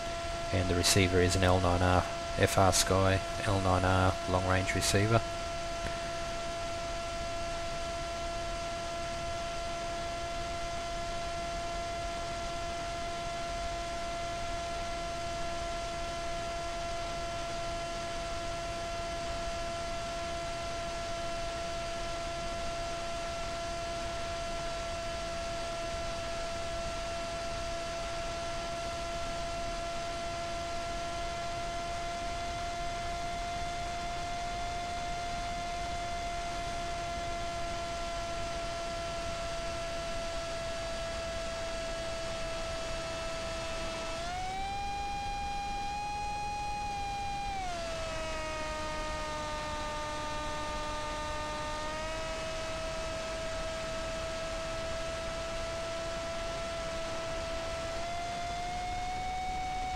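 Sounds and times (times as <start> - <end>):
electric motor propeller whine: 0.0 - 59.9.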